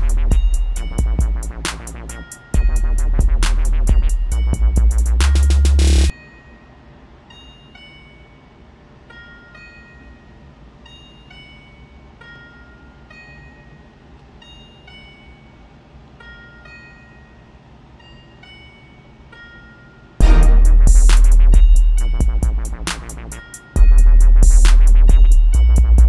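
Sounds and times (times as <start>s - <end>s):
bell-like background melody: 0.0s - 26.0s.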